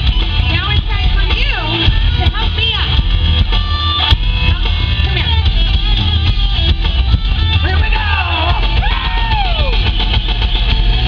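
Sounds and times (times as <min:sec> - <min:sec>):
rock band playing loudly: 0:00.0 - 0:11.0.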